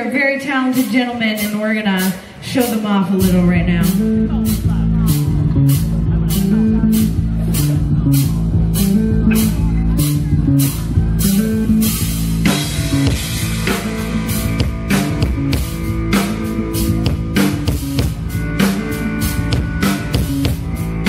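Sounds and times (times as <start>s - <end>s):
drum kit with cymbals: 0.0s - 21.0s
electric guitar: 0.7s - 21.0s
electric bass walking line: 2.5s - 21.0s.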